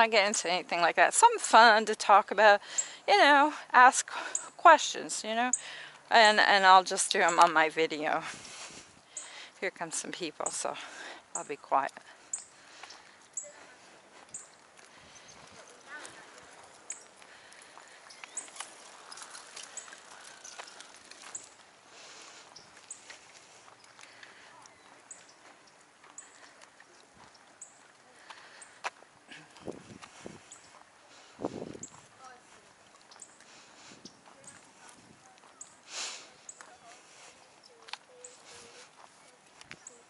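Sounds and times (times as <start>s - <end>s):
footsteps on asphalt: 6.8s - 40.0s
faint voices of people passing: 11.9s - 40.0s.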